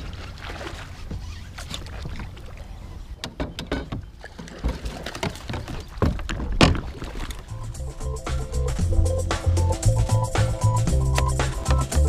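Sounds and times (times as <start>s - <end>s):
fishing rod clicks and knocks: 11.1s - 11.5s.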